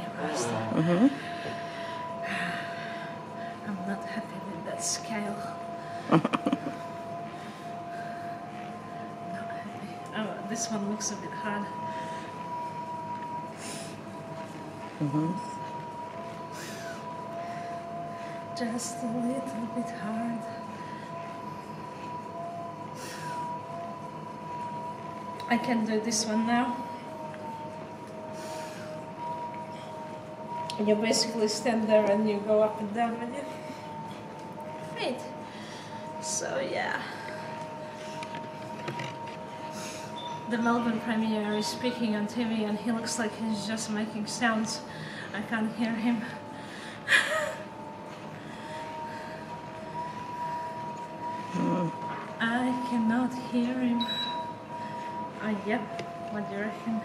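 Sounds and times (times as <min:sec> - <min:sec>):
elliptical machine whine: 0:00.0 - 0:57.0
woman breathy laugh: 0:06.1 - 0:06.8, 0:47.1 - 0:47.7.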